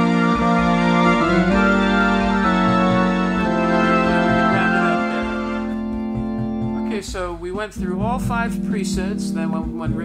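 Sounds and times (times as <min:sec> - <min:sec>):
organ playing chords: 0:00.0 - 0:10.0
soft low pulses: 0:00.4 - 0:07.3.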